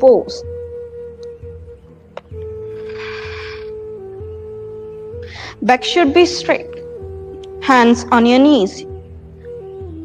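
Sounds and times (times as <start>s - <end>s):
slow background music: 0.0s - 10.0s.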